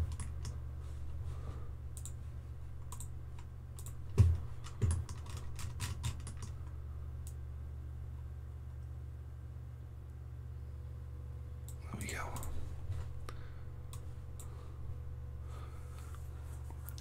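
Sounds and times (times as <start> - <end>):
steady low hum: 0.0 - 17.0
dull thumps: 4.1 - 5.1.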